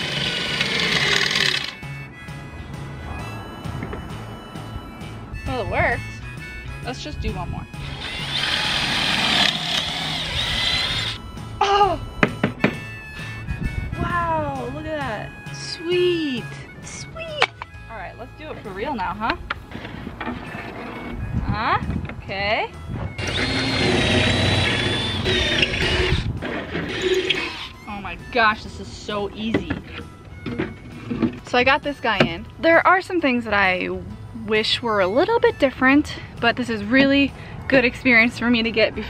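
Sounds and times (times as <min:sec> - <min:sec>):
cordless drill whining: 0:00.0 - 0:01.9, 0:07.8 - 0:11.2, 0:23.2 - 0:27.9.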